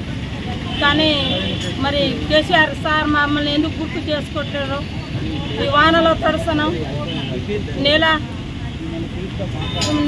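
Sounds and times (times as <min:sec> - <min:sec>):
woman speaking: 0:00.7 - 0:04.9, 0:05.6 - 0:06.9.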